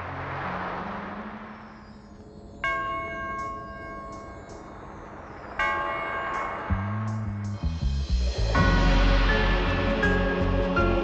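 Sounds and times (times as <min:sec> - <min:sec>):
soft low drone: 0:00.0 - 0:11.0
deep bass notes: 0:06.7 - 0:11.0.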